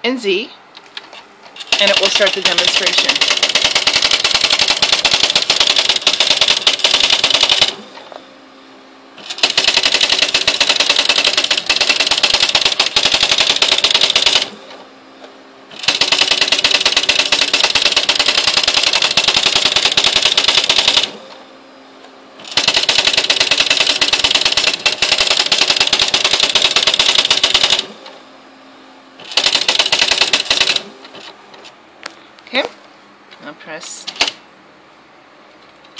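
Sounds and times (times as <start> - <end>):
typewriter clatter: 1.6 - 7.8, 9.2 - 14.5, 15.8 - 21.1, 22.5 - 27.9, 29.2 - 31.3, 34.1 - 34.4.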